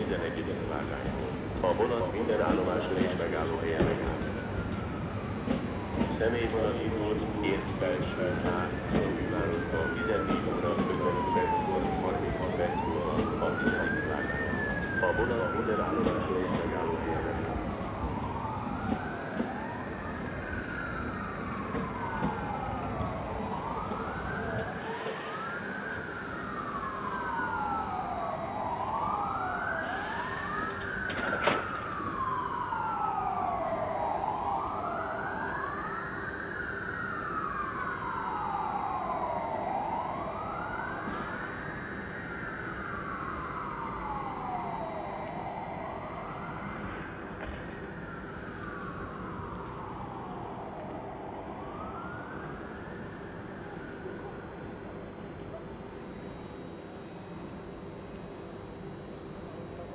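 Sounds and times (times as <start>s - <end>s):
emergency siren wailing: 0.0s - 59.9s.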